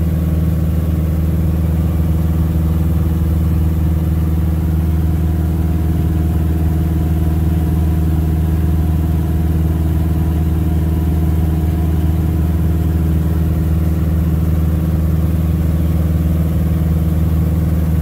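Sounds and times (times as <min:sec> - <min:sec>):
light aircraft engine drone: 0:00.0 - 0:18.0.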